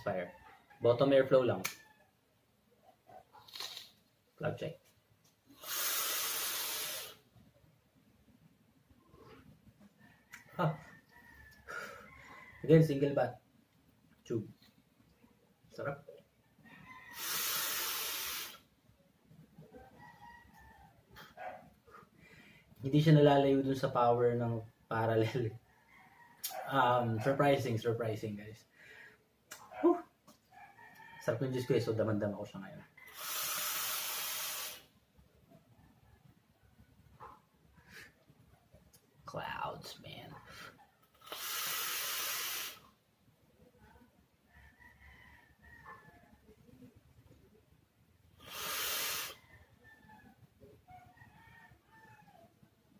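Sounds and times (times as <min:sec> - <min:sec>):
hiss of air and vapour: 0:05.5 - 0:07.3, 0:17.2 - 0:18.7, 0:33.1 - 0:34.9, 0:41.2 - 0:42.9, 0:48.4 - 0:49.4
faint breathy sounds: 0:11.5 - 0:12.6, 0:21.1 - 0:22.8, 0:28.6 - 0:29.4.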